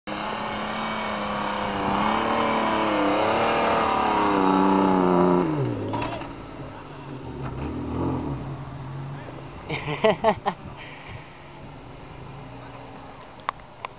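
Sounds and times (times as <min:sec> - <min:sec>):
engine revving hard: 0:00.1 - 0:06.0, 0:07.2 - 0:10.0.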